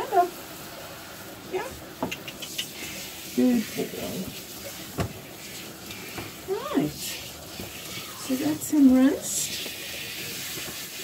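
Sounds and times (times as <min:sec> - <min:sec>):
hose shower spraying water: 0:00.0 - 0:11.0.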